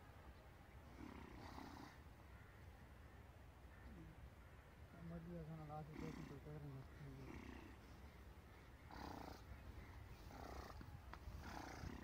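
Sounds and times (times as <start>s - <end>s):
faint wind rumble on microphone: 8.8s - 12.0s.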